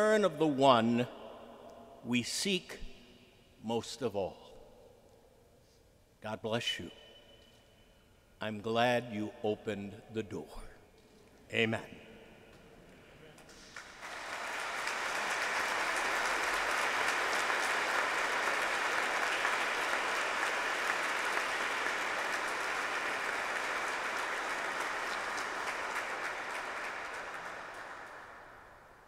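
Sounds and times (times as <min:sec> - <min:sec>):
congregation applauding: 0:13.4 - 0:29.0.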